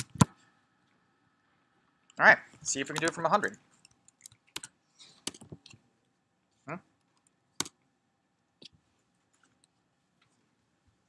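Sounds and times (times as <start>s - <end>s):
computer keyboard keystrokes: 3.8s - 5.8s.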